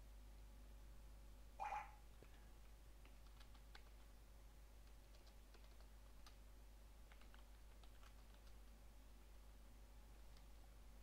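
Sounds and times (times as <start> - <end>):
keyboard typing clicks: 3.0 - 4.1, 4.8 - 6.4, 7.1 - 8.7.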